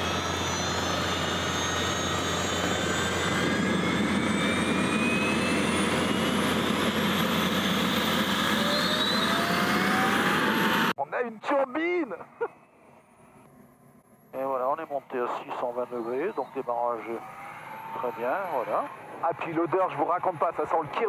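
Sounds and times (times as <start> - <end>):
gas turbine spooling up: 0.0 - 11.0.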